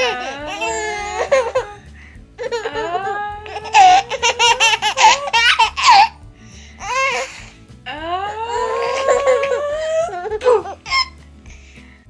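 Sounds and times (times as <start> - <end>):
high-pitched laughter: 2.4 - 6.2.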